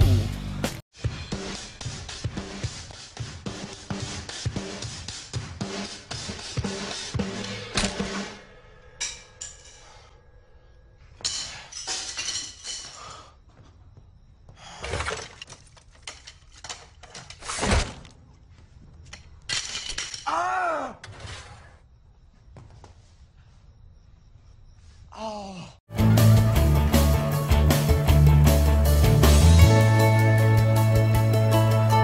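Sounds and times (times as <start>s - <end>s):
drum kit played rapidly: 25.9s - 32.0s.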